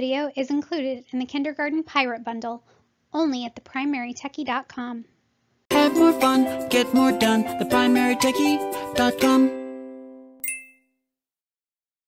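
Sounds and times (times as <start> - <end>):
jingle final chord: 5.7 - 10.8
bright ding: 10.4 - 10.9.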